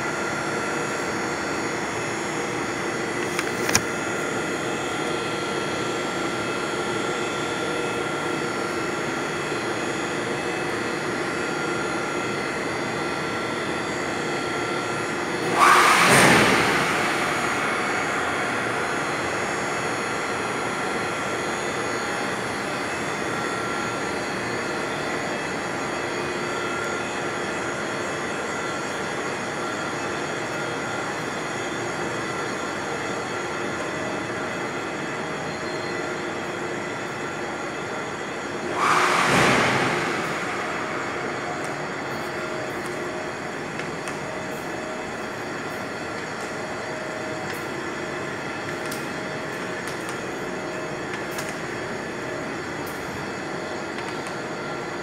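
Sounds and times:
pumps and machinery humming: 0.0 - 55.0
sudden loud rush of noise: 15.3 - 20.9, 38.7 - 43.5.

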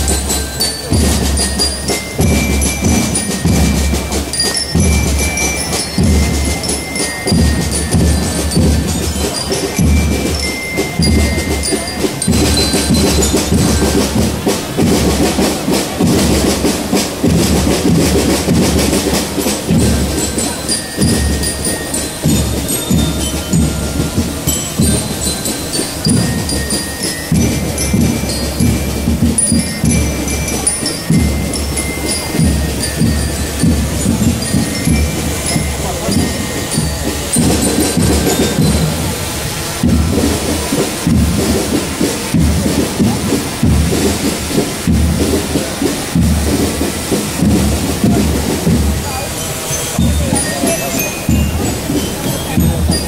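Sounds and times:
parade music with bell-like notes: 0.0 - 53.0.

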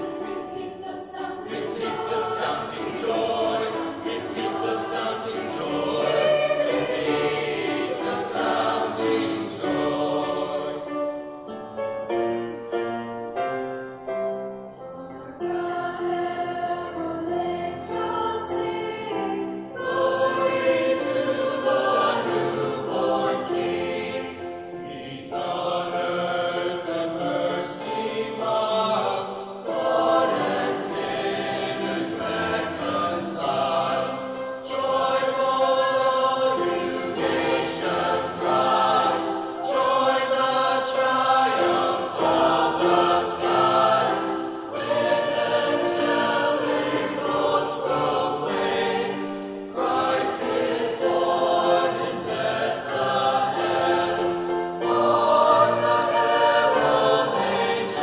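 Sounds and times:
mixed choir singing in harmony: 0.0 - 58.0.

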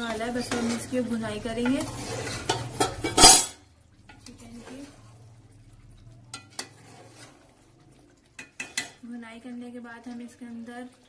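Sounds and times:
ladle stirring and scraping in pot: 0.0 - 9.0
ladle clinking against pot: 1.6 - 4.3, 8.4 - 9.0.

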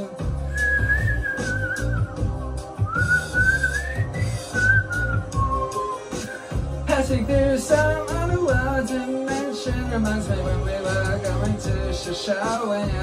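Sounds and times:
recorded music with bass line: 0.0 - 13.0
person whistling a melody: 0.4 - 6.6.

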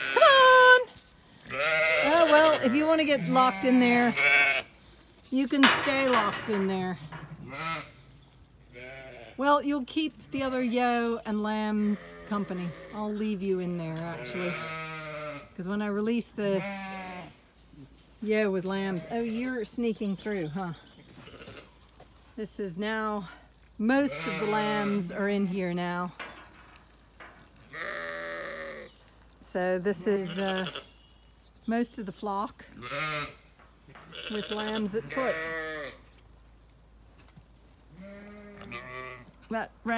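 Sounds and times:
sheep bleating: 0.0 - 0.8, 1.5 - 4.8, 7.0 - 8.0, 8.7 - 9.4, 14.0 - 15.5, 16.6 - 17.4, 23.9 - 25.2, 27.7 - 28.9, 30.1 - 30.9, 32.8 - 33.4, 34.0 - 36.0, 37.9 - 39.3.

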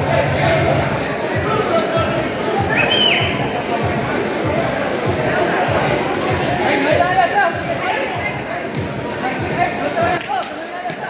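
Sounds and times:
players and spectators calling out: 0.0 - 11.0.

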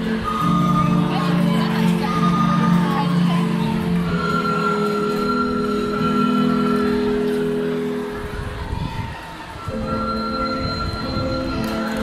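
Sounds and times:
recorder ensemble playing: 0.0 - 8.1, 9.6 - 12.0.

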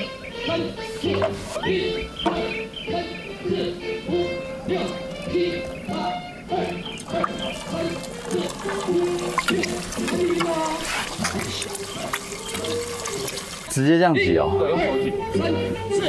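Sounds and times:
background music: 0.0 - 16.0
egg sizzling in frying pan: 7.1 - 13.8.

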